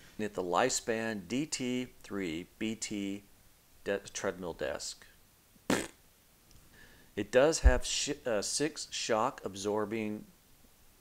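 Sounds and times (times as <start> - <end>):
man's short breath: 6.6 - 7.1.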